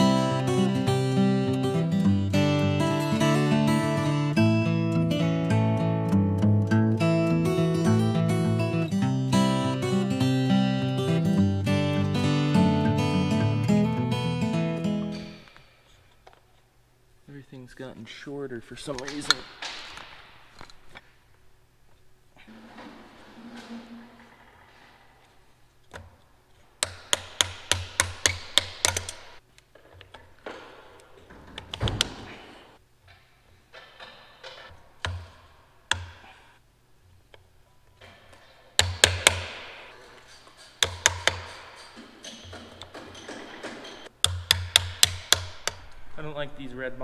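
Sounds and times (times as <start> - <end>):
hand tool clicking: 26.8 - 29.4, 38.8 - 39.6, 40.3 - 46.0
knocks: 40.6 - 45.9.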